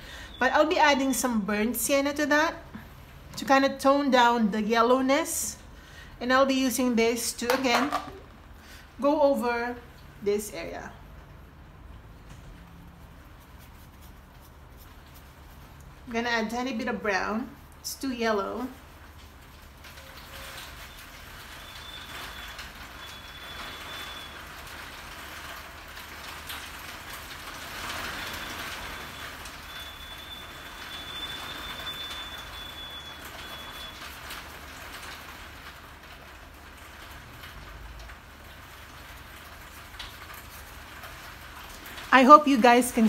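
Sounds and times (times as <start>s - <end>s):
steady rain: 0.0s - 43.0s.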